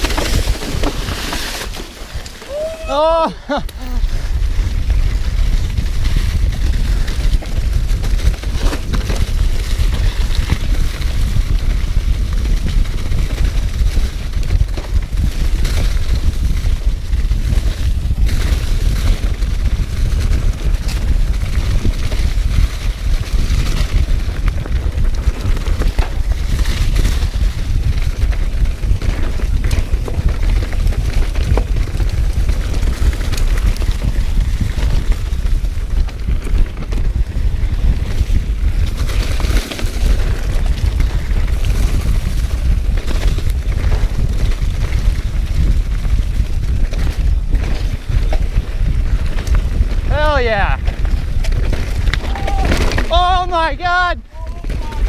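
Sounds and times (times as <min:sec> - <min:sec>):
bike knocks and rattles: 0:00.0 - 0:53.6
wind rumbling on microphone: 0:00.0 - 0:55.0.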